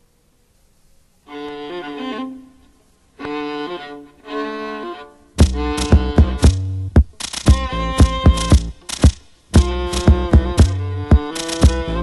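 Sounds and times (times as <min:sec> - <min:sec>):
violin bowed phrases: 0:01.3 - 0:08.8, 0:09.6 - 0:12.0.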